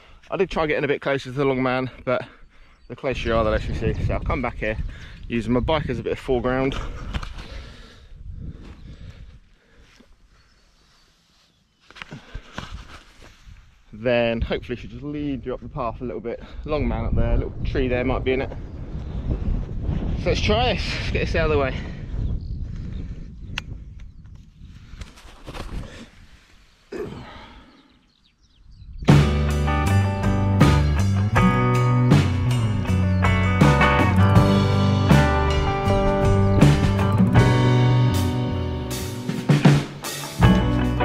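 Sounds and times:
wind buffeting microphone: 2.8 - 9.5, 12.6 - 26.5, 28.3 - 29.2, 31.1 - 38.6.

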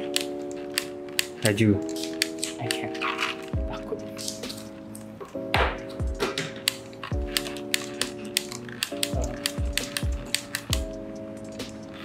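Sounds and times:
background music with steady beat: 0.0 - 12.0
film camera wheel ratcheting clicks: 6.6 - 12.0.

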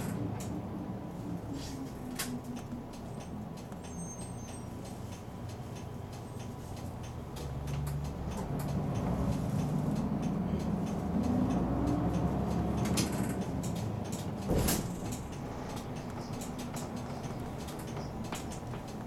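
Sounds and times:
bus diesel engine: 0.0 - 19.0.

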